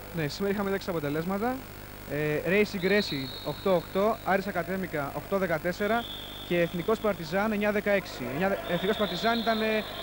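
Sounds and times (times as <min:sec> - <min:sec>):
man commentating: 0:00.1 - 0:10.0
faint steady high tone: 0:02.3 - 0:10.0.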